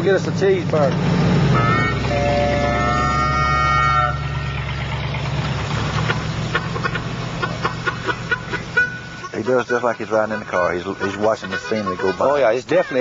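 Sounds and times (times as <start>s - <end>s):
car engine and road noise: 0.0s - 13.0s
two-tone car horn honk: 1.5s - 4.8s, 8.3s - 12.6s.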